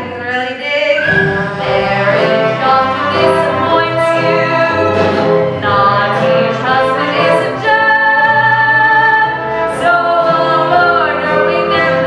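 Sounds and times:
musical accompaniment: 0.0 - 12.0.

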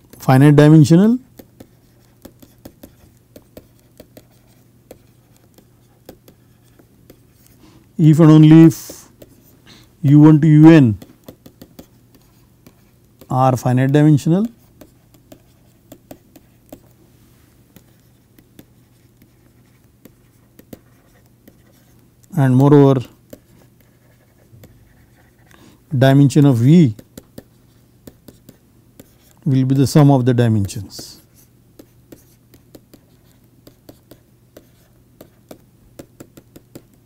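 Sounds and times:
stylus tapping and scratching: 0.0 - 17.0, 17.7 - 37.0
low steady hum: 0.0 - 37.0
stylus clicking on tablet: 31.8 - 37.0.

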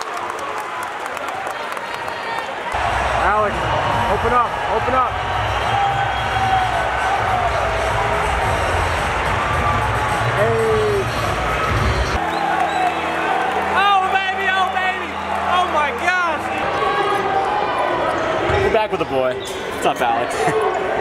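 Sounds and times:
crowd chatter: 1.0 - 21.0
background music: 2.8 - 18.4.

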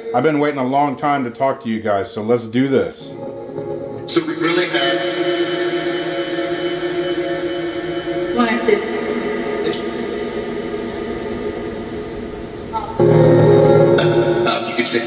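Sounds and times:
smeared music-like radio tones: 3.1 - 15.0
speech fragments: 4.1 - 5.0, 8.4 - 8.8, 14.5 - 15.0.

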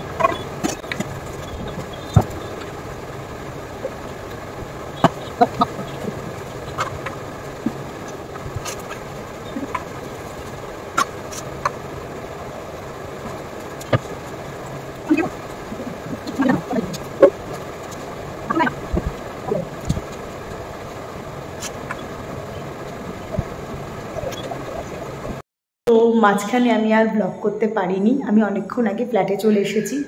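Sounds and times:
electric fan whirring: 0.0 - 25.4.

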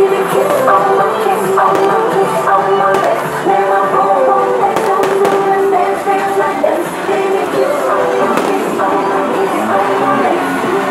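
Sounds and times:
fireworks cracking: 0.0 - 10.8
loud stage music: 0.0 - 10.9.

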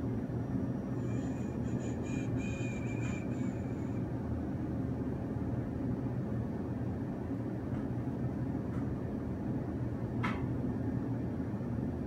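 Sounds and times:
low outdoor rumble: 0.0 - 12.0
faint high-pitched tones: 0.9 - 4.1.

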